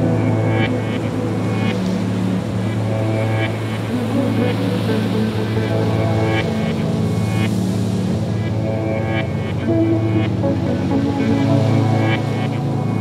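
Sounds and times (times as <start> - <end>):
ambient music with low drone: 0.0 - 13.0.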